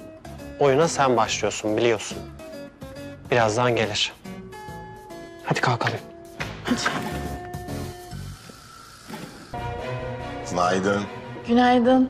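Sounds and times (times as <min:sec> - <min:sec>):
score music with held tones: 0:09.5 - 0:12.0.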